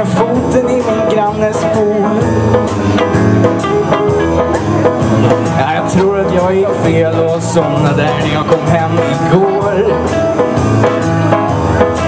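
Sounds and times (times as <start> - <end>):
bass: 0.0 - 12.0
drum kit with cymbals: 0.0 - 12.0
guitar: 0.0 - 12.0
piano: 0.0 - 12.0.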